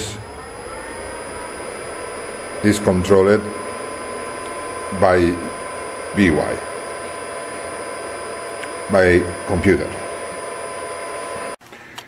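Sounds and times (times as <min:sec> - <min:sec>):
milling spindle motor whine: 0:00.0 - 0:11.6.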